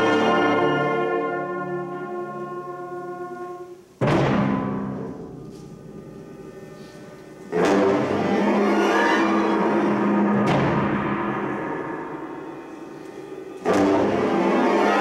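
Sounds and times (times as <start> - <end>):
wind band playing chords: 0.0 - 15.0
percussion hit: 4.0 - 5.5, 10.1 - 14.4.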